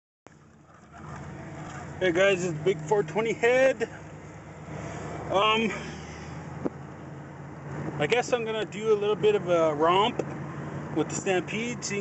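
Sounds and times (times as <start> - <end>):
car engine and road noise: 0.3 - 12.0.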